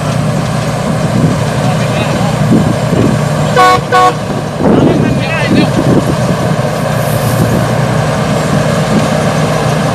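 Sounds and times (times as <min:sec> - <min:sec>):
combine harvester diesel engine drone: 0:00.0 - 0:09.9.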